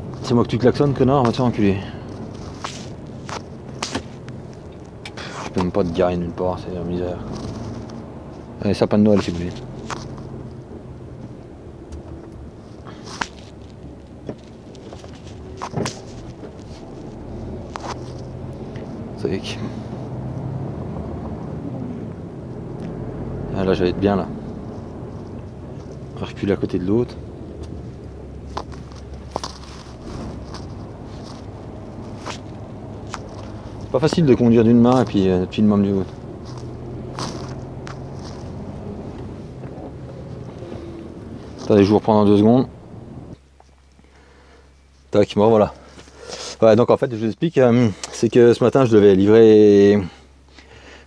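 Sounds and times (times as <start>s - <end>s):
truck diesel engine running: 0.0s - 43.4s.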